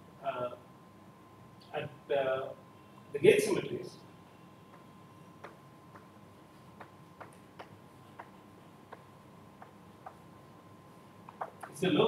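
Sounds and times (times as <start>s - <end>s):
chalk tapping on blackboard: 4.7s - 6.1s, 6.8s - 10.2s, 11.3s - 11.8s.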